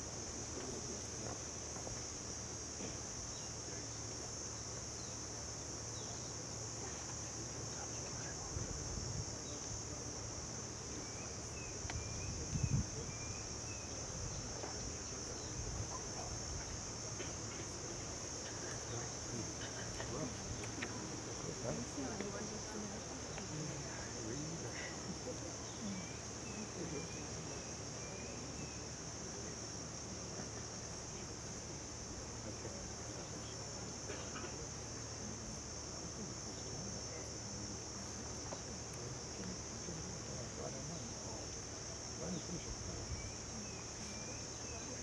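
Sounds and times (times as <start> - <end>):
insect chorus chirring: 0.0 - 45.0
faint voices murmuring: 0.4 - 45.0.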